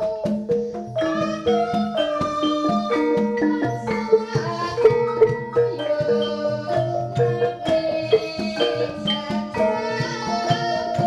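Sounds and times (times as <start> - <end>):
gamelan metallophones and gongs: 0.0 - 11.0.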